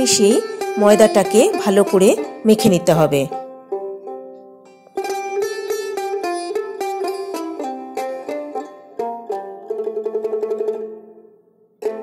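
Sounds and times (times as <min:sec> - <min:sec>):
plucked-string instrumental tune: 0:00.0 - 0:12.0.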